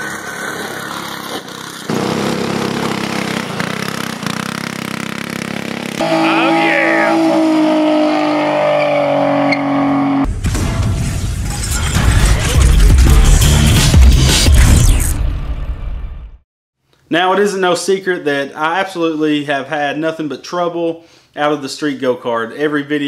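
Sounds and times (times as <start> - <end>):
go-kart engine running: 0.0 - 9.7
car engine at high revs: 0.0 - 10.3.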